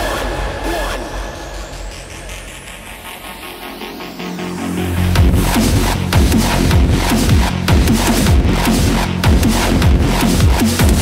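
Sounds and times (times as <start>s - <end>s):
low drone: 0.0s - 10.1s
noisy synth wash: 0.0s - 11.0s
rising synth sweep: 0.4s - 8.7s.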